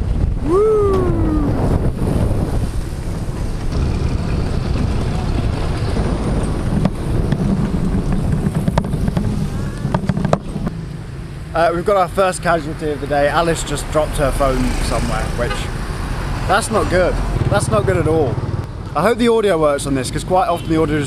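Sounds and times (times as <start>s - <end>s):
wind buffeting microphone: 0.0s - 20.2s.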